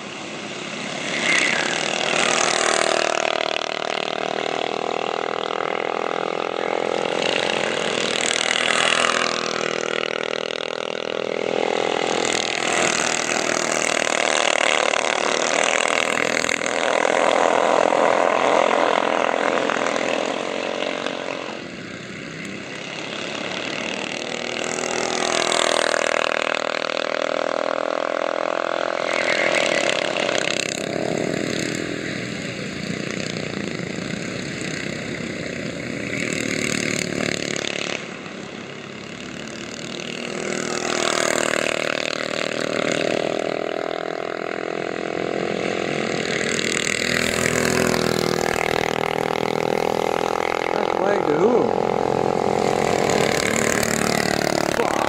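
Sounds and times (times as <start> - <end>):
go-kart engines passing: 0.0 - 55.0.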